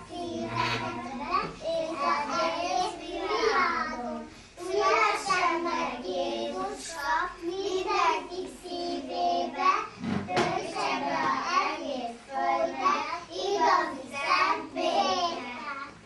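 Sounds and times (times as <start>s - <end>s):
young children singing together: 0.0s - 16.0s.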